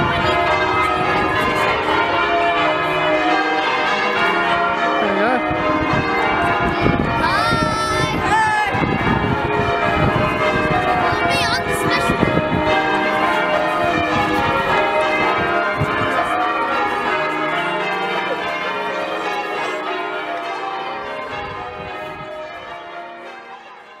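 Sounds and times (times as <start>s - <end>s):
church bells ringing a peal: 0.0s - 24.0s.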